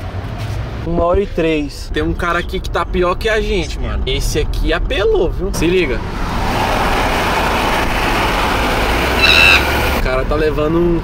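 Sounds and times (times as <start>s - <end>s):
low engine hum: 0.0s - 11.0s
road and wind noise: 0.0s - 11.0s
brief high pitched tone: 9.2s - 9.7s.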